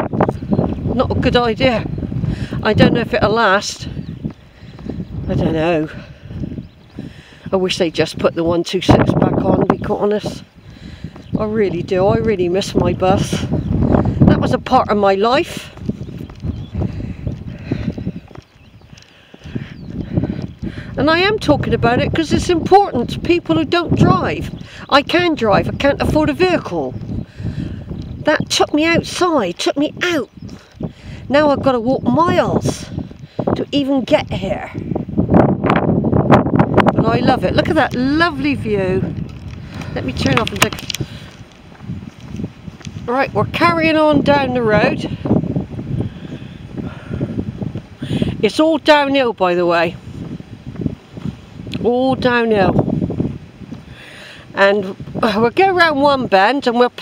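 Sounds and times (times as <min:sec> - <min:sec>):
wind buffeting microphone: 0:00.0 - 0:57.0
footsteps on tarmac: 0:00.1 - 0:57.0.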